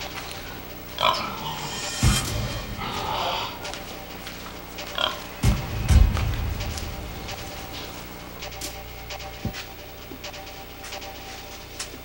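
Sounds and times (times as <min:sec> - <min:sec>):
pig grunting: 0:00.4 - 0:03.9, 0:04.9 - 0:05.2.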